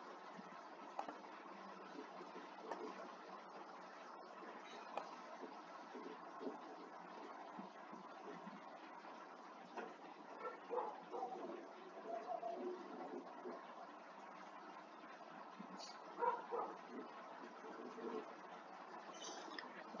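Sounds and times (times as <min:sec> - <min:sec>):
faint room hiss: 0:00.0 - 0:20.0
soft background sounds: 0:00.0 - 0:20.0.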